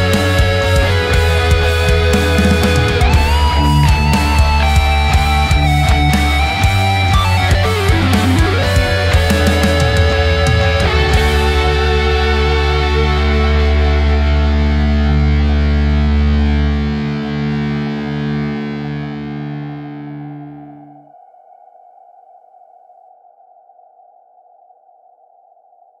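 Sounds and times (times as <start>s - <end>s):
deep bass: 0.0s - 19.3s
ringing rock guitar chord: 0.0s - 20.8s.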